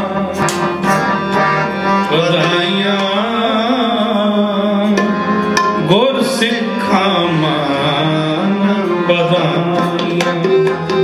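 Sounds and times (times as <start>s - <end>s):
man singing: 0.0s - 1.1s, 2.0s - 11.0s
harmonium sustained notes: 0.0s - 11.0s
tabla strokes: 9.7s - 11.0s.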